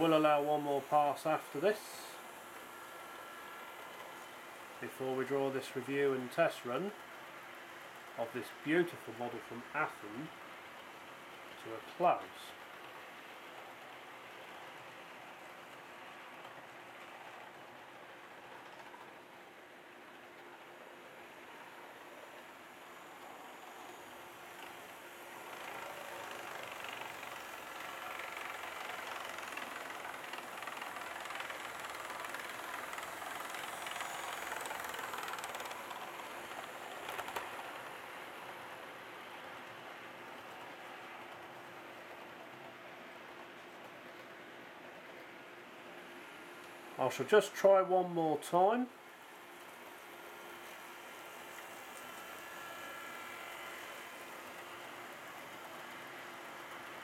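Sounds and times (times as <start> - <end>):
model trains rolling on track: 0.0 - 57.0.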